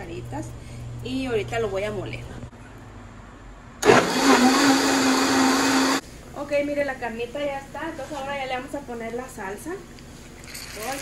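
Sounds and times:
blender motor whirring: 3.8 - 6.0.

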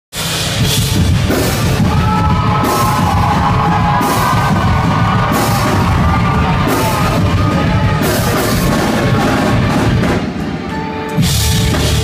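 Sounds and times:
loud rock music with drums: 0.1 - 12.0.

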